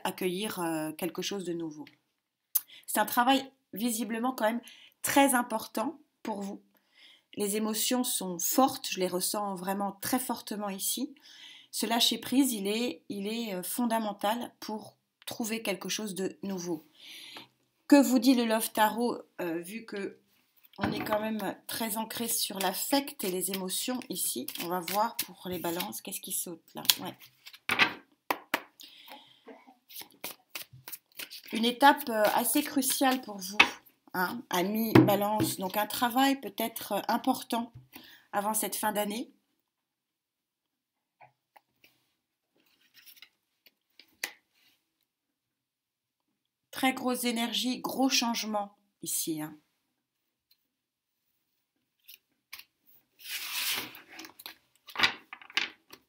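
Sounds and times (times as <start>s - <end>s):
rustle of sliding cards: 53.2s - 54.5s.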